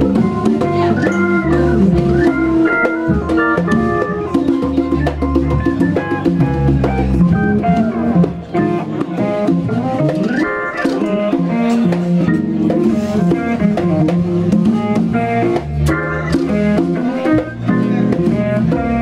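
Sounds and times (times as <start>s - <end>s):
congas and percussion: 0.0s - 19.0s
electric guitar lead lines: 0.0s - 19.0s
organ: 0.0s - 19.0s.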